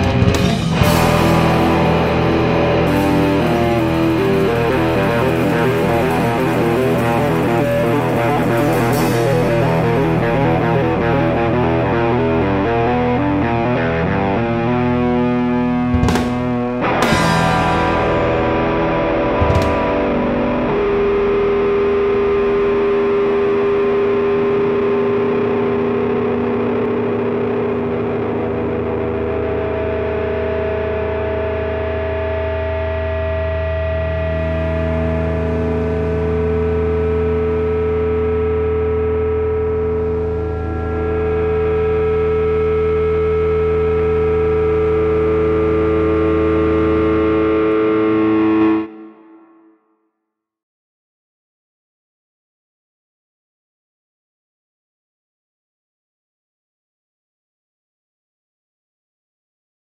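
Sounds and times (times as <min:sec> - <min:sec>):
steady low note: 0:00.0 - 0:49.7
distorted electric guitar chord: 0:00.0 - 0:49.9.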